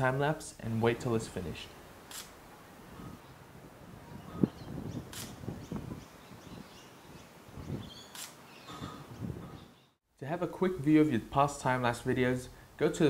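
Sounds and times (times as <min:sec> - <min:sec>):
quiet outdoor ambience: 0:00.0 - 0:13.0
camera shutter clicking: 0:02.1 - 0:02.3, 0:05.1 - 0:05.4, 0:08.1 - 0:08.4.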